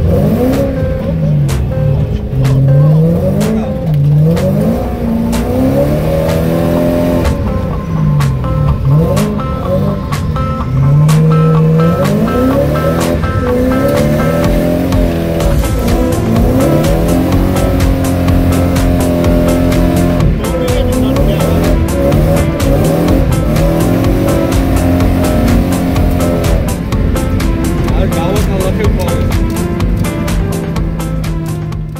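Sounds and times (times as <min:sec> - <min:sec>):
car engine revving: 0:00.0 - 0:31.9.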